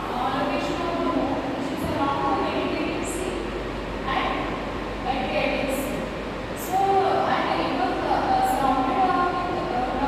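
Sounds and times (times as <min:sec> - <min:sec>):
woman lecturing: 0:00.0 - 0:10.0.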